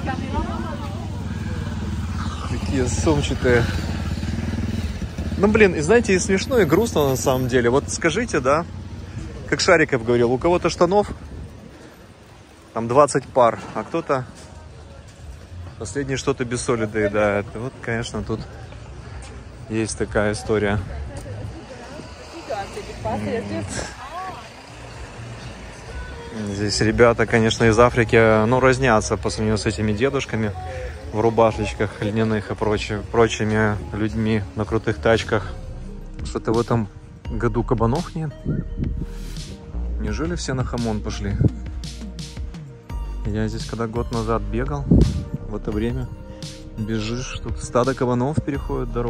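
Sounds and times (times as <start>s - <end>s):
motorcycle engine running: 0.0s - 12.8s
van driving past: 0.0s - 15.7s, 21.4s - 37.7s.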